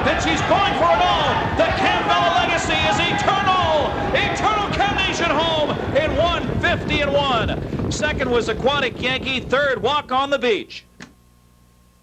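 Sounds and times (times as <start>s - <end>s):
man speaking animatedly: 0.0s - 10.8s
steady background noise: 0.0s - 10.9s.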